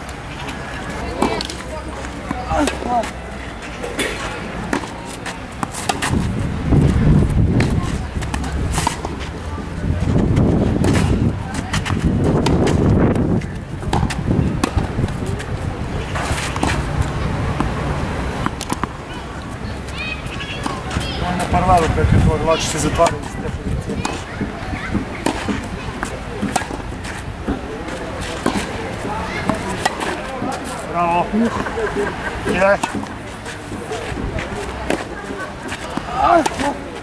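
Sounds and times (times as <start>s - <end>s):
tennis balls struck by racquets: 0.0s - 37.0s
low rumbling noise: 5.4s - 22.4s.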